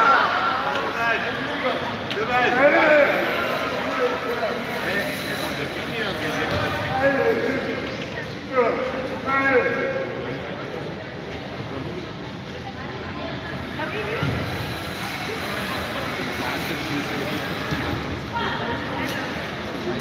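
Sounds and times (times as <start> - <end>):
sports hall background noise: 0.0 - 20.0.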